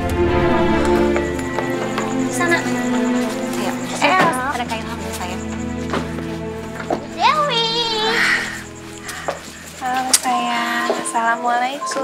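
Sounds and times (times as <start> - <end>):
drama music with held notes: 0.0 - 12.0.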